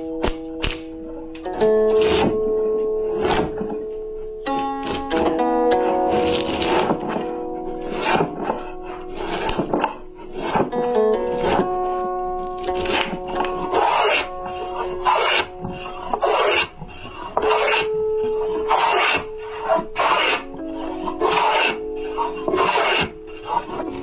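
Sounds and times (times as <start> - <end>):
background music: 0.0 - 24.0
plane scraping wood: 1.5 - 24.0.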